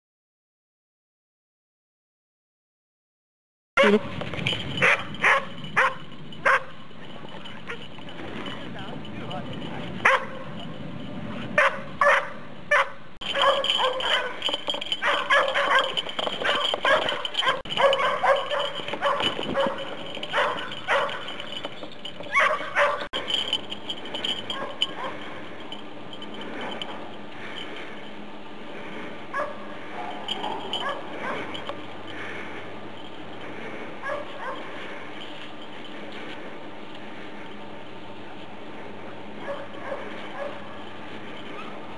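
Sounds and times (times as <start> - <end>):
dog barking and yipping: 4.8 - 6.8, 10.0 - 10.6, 11.6 - 21.6, 22.2 - 23.5, 24.2 - 25.3, 29.3 - 31.6, 34.0 - 34.8, 39.4 - 40.8, 41.4 - 41.9
voices: 6.4 - 10.8.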